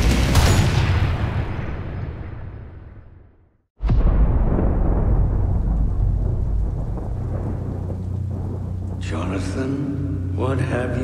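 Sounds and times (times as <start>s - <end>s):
thunder rumbling: 3.8s - 11.0s
rain: 4.4s - 11.0s.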